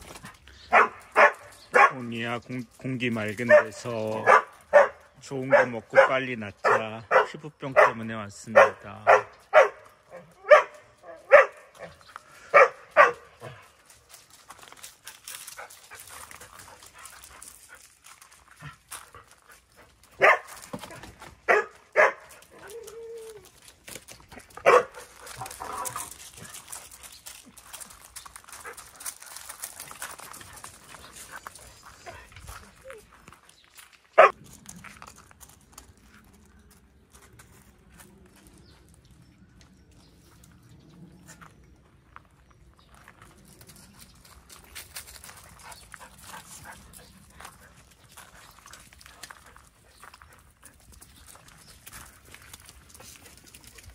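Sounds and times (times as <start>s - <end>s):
dog barking: 0.7s - 2.0s, 3.5s - 13.6s, 20.2s - 20.6s, 21.5s - 22.6s, 24.6s - 25.9s, 34.2s - 34.4s.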